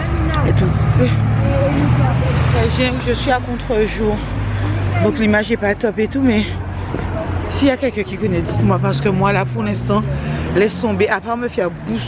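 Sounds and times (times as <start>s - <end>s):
vehicle engine rumbling: 0.0s - 12.0s
woman's voice: 0.1s - 6.7s, 7.5s - 12.0s.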